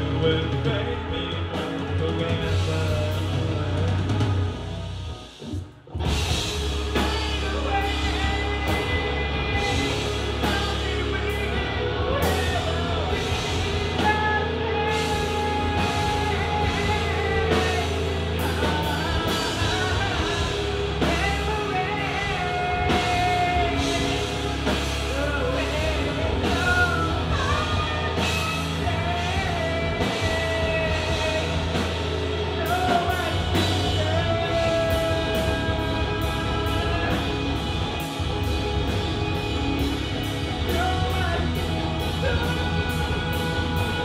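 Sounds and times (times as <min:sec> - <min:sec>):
person singing: 0:00.0 - 0:05.0, 0:06.1 - 0:44.0
rock band playing: 0:00.0 - 0:44.0.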